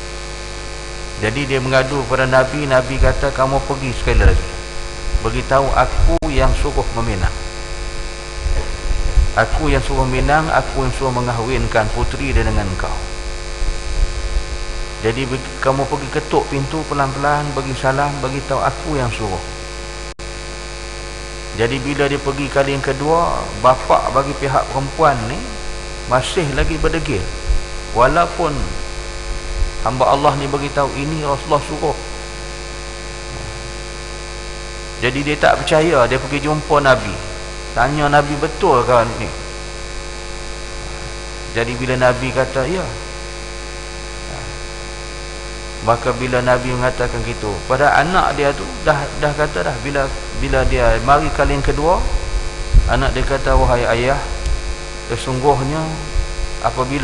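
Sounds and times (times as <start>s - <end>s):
electrical hum: 0.0s - 57.0s
person speaking: 1.2s - 7.5s, 8.4s - 13.2s, 15.0s - 19.5s, 21.5s - 28.9s, 29.8s - 32.2s, 33.3s - 33.8s, 35.0s - 39.5s, 40.8s - 43.1s, 44.3s - 44.7s, 45.8s - 57.0s
low rumble: 3.9s - 10.8s, 50.0s - 54.8s.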